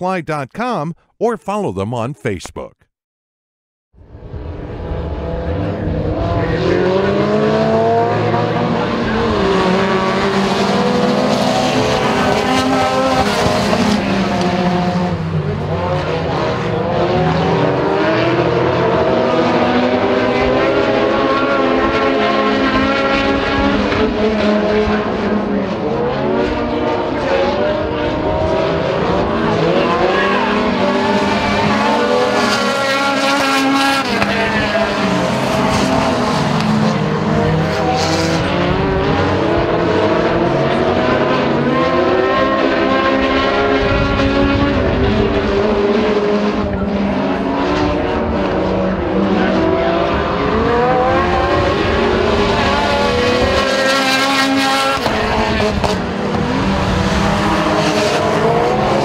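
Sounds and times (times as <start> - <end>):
stock car engines racing: 4.1 - 59.0.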